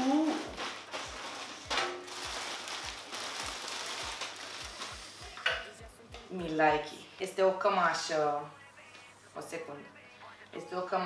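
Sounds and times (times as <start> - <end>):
plastic bag crinkling: 0.0 - 5.4.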